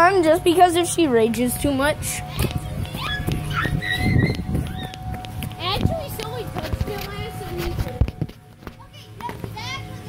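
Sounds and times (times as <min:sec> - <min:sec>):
children talking and calling: 0:00.0 - 0:10.0
child squealing: 0:03.0 - 0:05.0.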